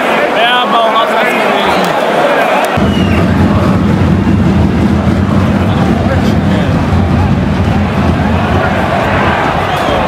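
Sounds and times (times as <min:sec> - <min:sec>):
stadium crowd noise: 0:00.0 - 0:10.0
low rumble: 0:02.8 - 0:10.0.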